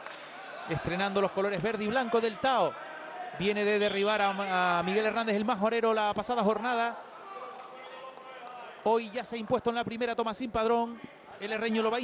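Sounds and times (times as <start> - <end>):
man speaking: 3.4 - 7.0, 8.8 - 12.0.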